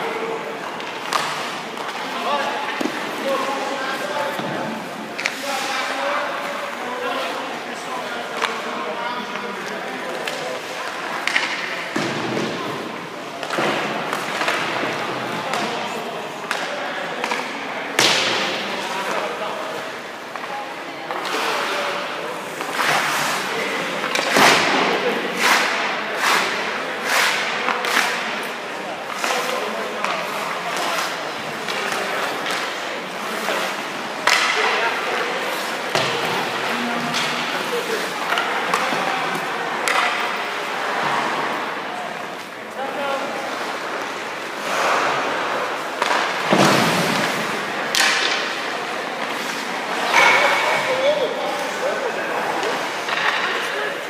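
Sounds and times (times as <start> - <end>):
indistinct voices: 0.0 - 54.0
hockey sticks cracking on pucks: 0.6 - 4.5, 5.1 - 51.8, 52.5 - 54.0
skate blades scraping ice: 25.2 - 34.3, 49.2 - 50.0.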